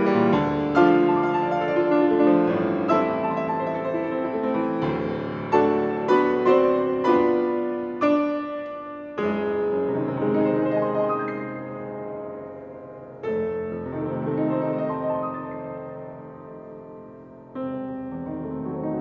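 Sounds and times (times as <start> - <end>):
grand piano playing: 0.0 - 19.0.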